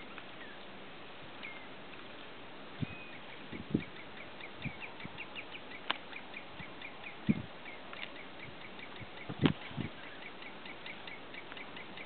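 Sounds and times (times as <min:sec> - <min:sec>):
short high bird calls: 0:02.8 - 0:12.0.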